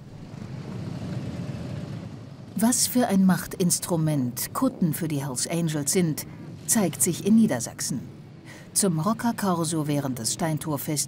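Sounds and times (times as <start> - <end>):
motorcycle engines rumbling: 0.0 - 8.4.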